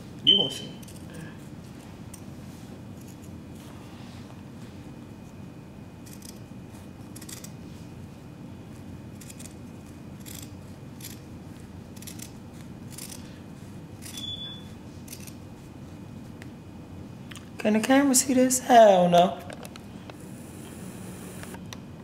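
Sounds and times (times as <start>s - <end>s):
scissors snipping fabric: 6.0s - 6.4s, 7.1s - 7.6s, 9.1s - 11.2s, 11.9s - 13.2s, 15.0s - 15.4s.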